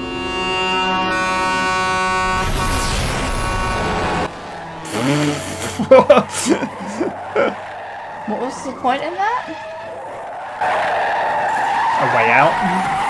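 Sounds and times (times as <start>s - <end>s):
musical drone: 0.0s - 9.2s
truck passing on highway: 0.0s - 13.0s
voices: 4.8s - 10.4s.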